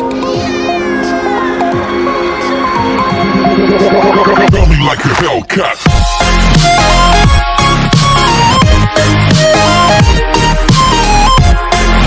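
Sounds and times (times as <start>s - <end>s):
electronic background music: 0.0s - 12.0s
cat meowing: 0.2s - 1.8s.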